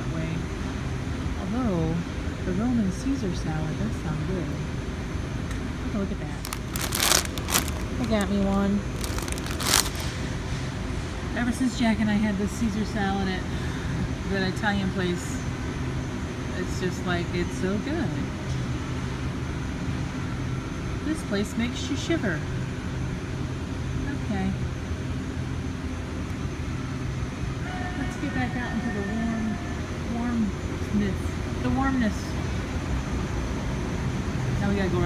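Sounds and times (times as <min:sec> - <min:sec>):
refrigeration fans humming: 0:00.0 - 0:20.0
plastic bag crackling: 0:06.4 - 0:10.2.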